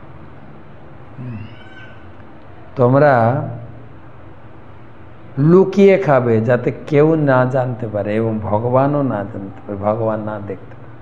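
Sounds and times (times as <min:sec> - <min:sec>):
low voiced hum: 0:00.0 - 0:11.0
faint high-pitched call: 0:01.2 - 0:02.8.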